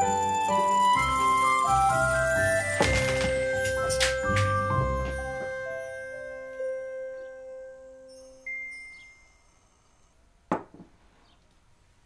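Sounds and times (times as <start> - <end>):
chime ringing: 0.6 - 7.3, 8.0 - 10.1.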